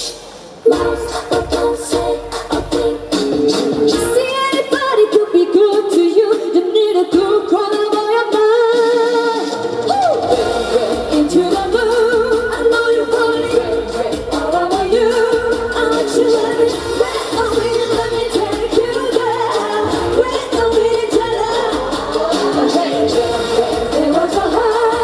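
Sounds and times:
loud amplified pop music: 0:00.0 - 0:25.0
female vocal group singing: 0:00.6 - 0:25.0.

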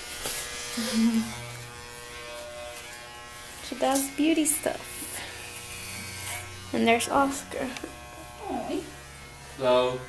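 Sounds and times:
electric hair clippers buzzing: 0:00.0 - 0:10.0
person laughing: 0:00.8 - 0:01.4.

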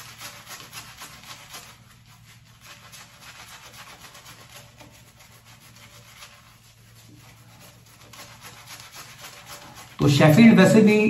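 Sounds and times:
shaving brush swishing through lather: 0:00.0 - 0:11.0.

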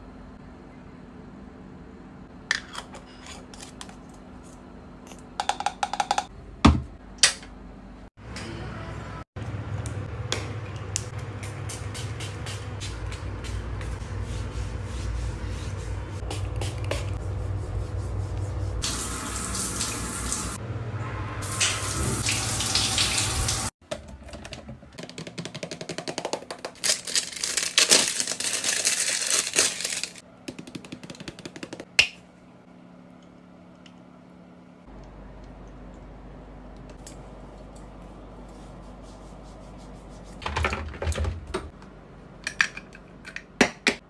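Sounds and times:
shower water hissing: 0:17.5 - 0:20.6, 0:21.4 - 0:23.8
low steady hum: 0:31.8 - 0:40.4.

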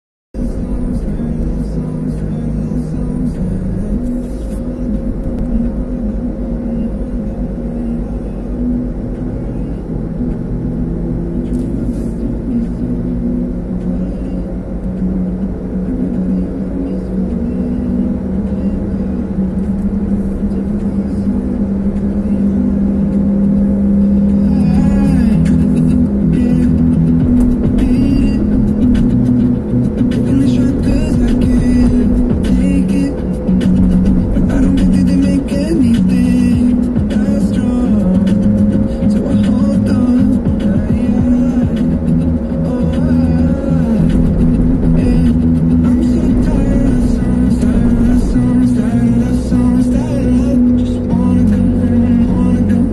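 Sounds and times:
engine and tyre drone: 0:00.4 - 0:52.9
music playing in car: 0:00.4 - 0:52.9.

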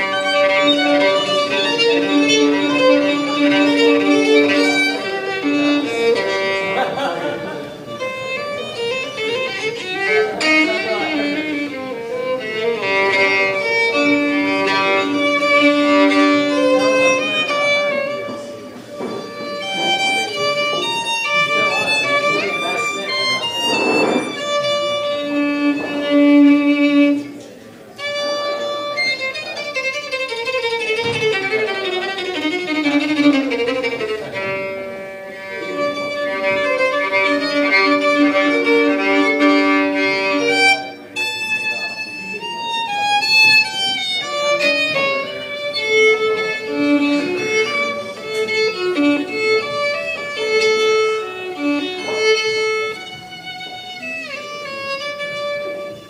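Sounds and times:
solo violin melody: 0:00.0 - 0:56.0.

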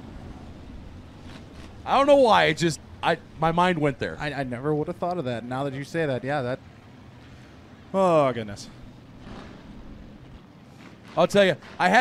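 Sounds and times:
faint race car engines rumbling: 0:00.0 - 0:12.0.

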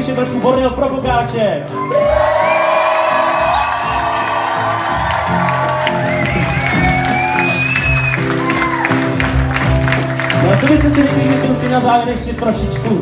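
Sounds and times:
audience cheering: 0:01.7 - 0:11.6.

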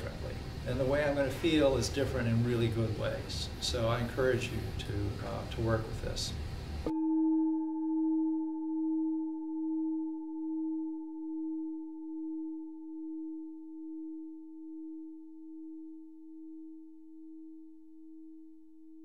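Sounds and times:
singing bowl ringing: 0:06.8 - 0:18.5.

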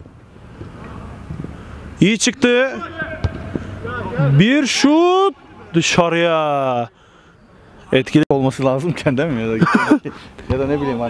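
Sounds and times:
faint voices of players: 0:02.0 - 0:06.0.

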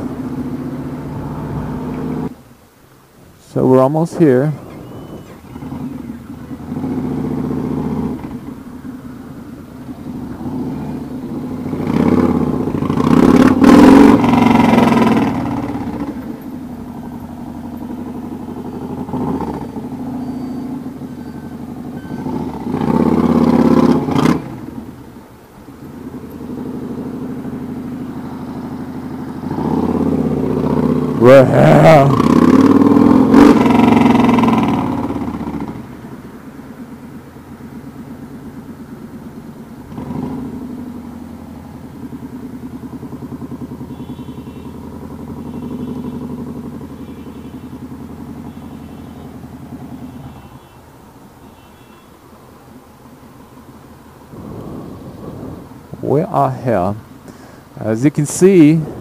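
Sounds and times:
motorcycle engine accelerating: 0:00.0 - 0:02.4, 0:04.2 - 0:50.5, 0:53.2 - 0:59.0.

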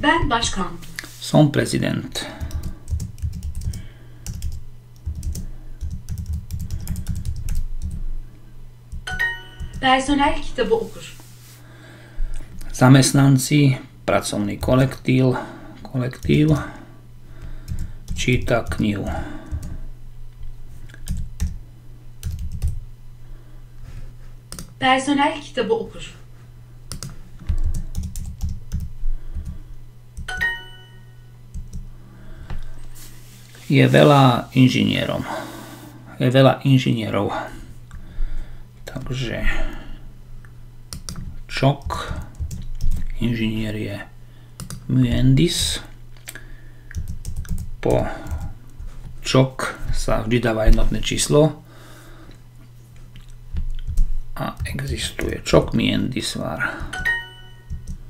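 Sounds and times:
typing on computer keyboard: 0:02.4 - 0:08.0, 0:22.2 - 0:22.8, 0:26.9 - 0:28.9, 0:44.6 - 0:44.8, 0:46.9 - 0:48.5, 0:56.8 - 0:58.0.

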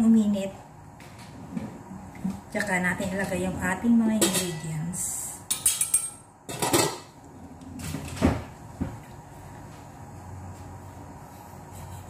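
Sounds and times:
dishes knocking and clinking: 0:05.5 - 0:07.2
dishes scraping: 0:05.5 - 0:07.2.

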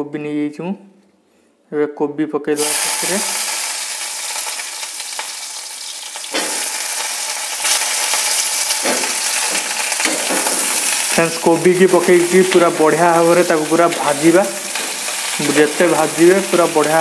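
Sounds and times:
vegetables sizzling in hot oil: 0:02.6 - 0:17.0.

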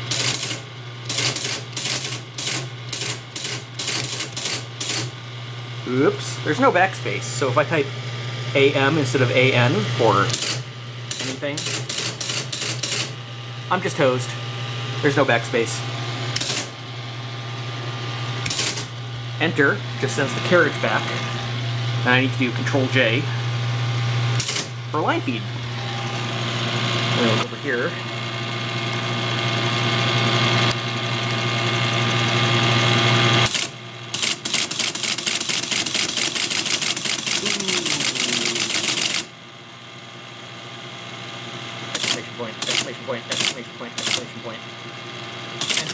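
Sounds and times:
teletype printing clatter: 0:00.0 - 0:05.1, 0:10.3 - 0:13.1, 0:18.5 - 0:18.9, 0:33.4 - 0:39.3, 0:42.0 - 0:44.4, 0:45.6 - 0:45.9
teletype motor hum: 0:00.0 - 0:45.9
teletype carriage returning: 0:33.5 - 0:39.3, 0:42.0 - 0:44.3, 0:45.6 - 0:45.9.

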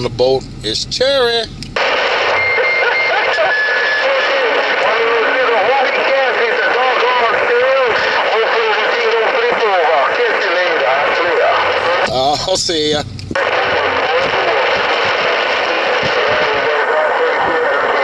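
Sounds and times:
steady radio whistles: 0:01.8 - 0:18.0
garbled voice over radio speaker: 0:02.6 - 0:18.0.

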